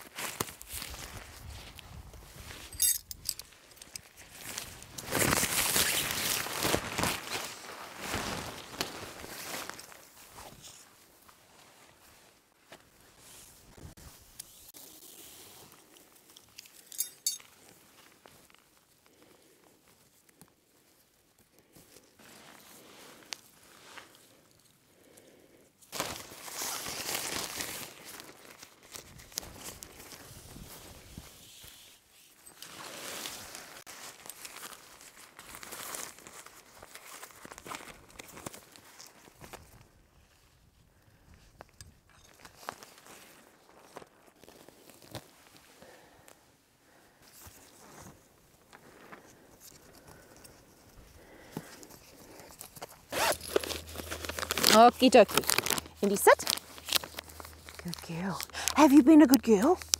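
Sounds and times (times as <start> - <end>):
tarp fabric rustling: 4.2 - 16.0, 25.9 - 39.8, 51.2 - 59.9.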